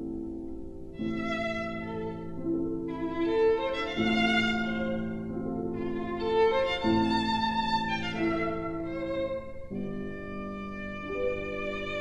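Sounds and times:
piano accompaniment: 0:00.0 - 0:12.0
solo violin long bowed notes: 0:00.9 - 0:12.0.

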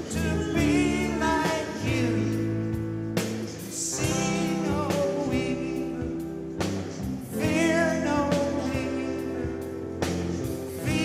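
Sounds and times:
live rock band playing: 0:00.0 - 0:11.0
person singing: 0:00.0 - 0:11.0.

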